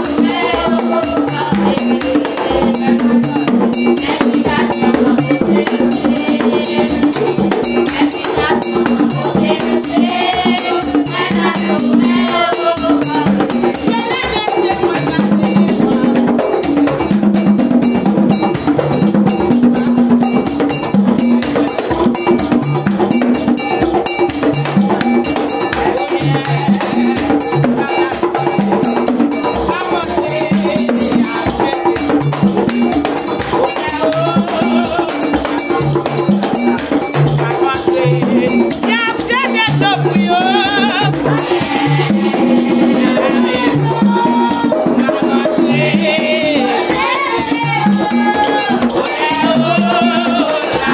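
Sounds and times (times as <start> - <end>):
high wavering singing: 0.0 - 16.6, 17.3 - 50.9
hand drums beating fast: 0.0 - 50.9
metal bell struck rhythmically: 0.0 - 50.9.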